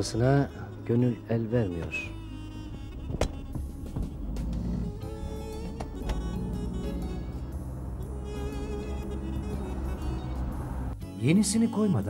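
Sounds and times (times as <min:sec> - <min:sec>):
background music: 0:00.0 - 0:12.0
van engine running: 0:02.2 - 0:11.0.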